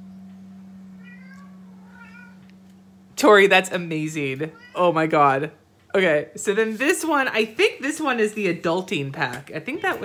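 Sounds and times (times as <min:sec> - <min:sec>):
low hum: 0:00.0 - 0:04.4
cat meowing: 0:01.0 - 0:02.5, 0:04.4 - 0:04.8.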